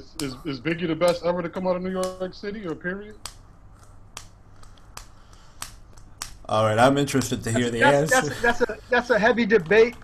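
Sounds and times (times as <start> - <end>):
faint low background noise: 0.0 - 10.0.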